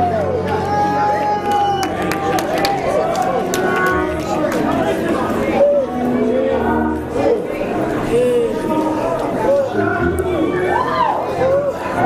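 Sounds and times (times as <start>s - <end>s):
congregation calling out and singing: 0.0s - 12.0s
held music: 0.0s - 12.0s.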